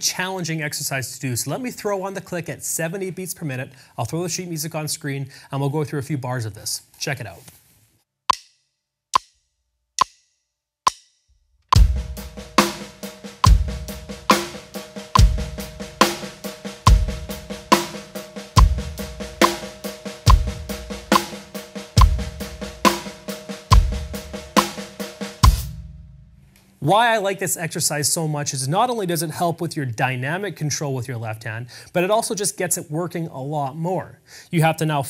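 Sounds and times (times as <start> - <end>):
bass drum: 11.7 - 26.5
hi-hat: 11.8 - 25.8
snare drum: 11.8 - 25.8.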